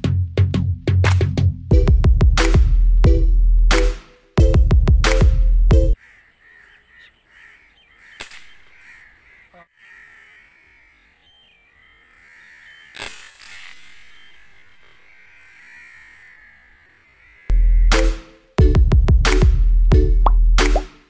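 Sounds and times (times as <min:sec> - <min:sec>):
crows cawing: 0:06.0 - 0:18.2
small click: 0:08.2 - 0:08.5
air rifle shot: 0:08.2 - 0:08.7.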